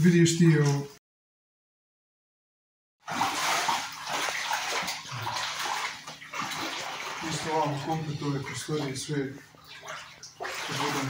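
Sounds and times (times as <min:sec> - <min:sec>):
footsteps wading through water: 0:03.0 - 0:11.0.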